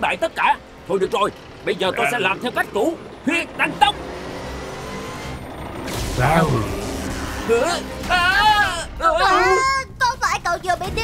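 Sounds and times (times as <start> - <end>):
low vehicle hum: 0.0 - 11.0
background music: 5.7 - 11.0.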